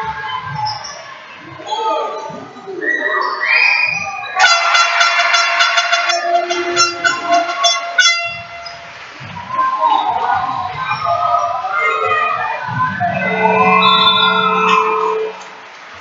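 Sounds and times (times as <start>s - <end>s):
people shouting: 4.0s - 8.8s, 9.4s - 15.6s
loud horn: 4.4s - 8.8s, 13.2s - 15.6s.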